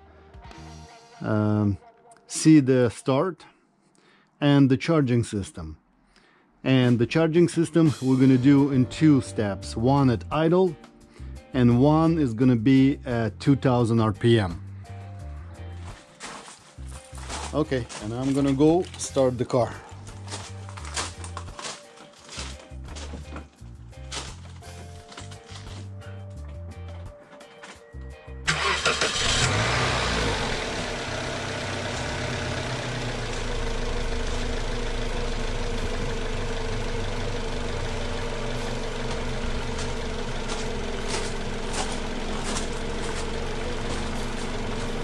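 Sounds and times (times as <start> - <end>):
car engine cranking and starting: 28.5 - 45.0
car engine idling: 28.5 - 45.0.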